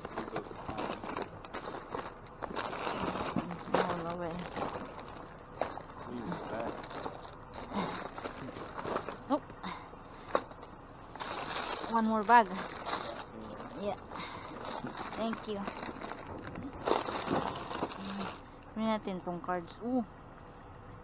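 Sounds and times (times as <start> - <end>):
plastic wrappers crinkling: 0.0 - 9.4, 10.3 - 18.5.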